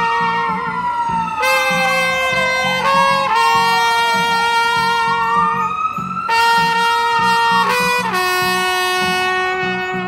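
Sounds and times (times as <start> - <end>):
trumpet playing held notes: 0.0 - 0.8, 1.4 - 5.4, 6.3 - 10.0
siren wailing: 0.0 - 10.0.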